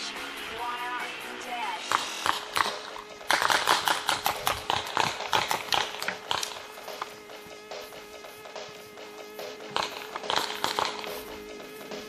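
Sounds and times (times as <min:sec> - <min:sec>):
music: 0:00.0 - 0:12.0
sharp clicks or pops: 0:01.9 - 0:07.2, 0:09.7 - 0:11.4.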